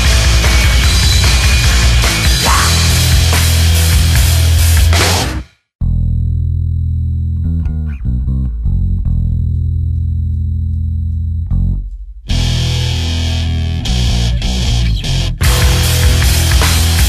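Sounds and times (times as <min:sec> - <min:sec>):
metal band with guitars and drums: 0:00.0 - 0:05.5, 0:12.3 - 0:17.0
bass guitar riff: 0:00.0 - 0:17.0.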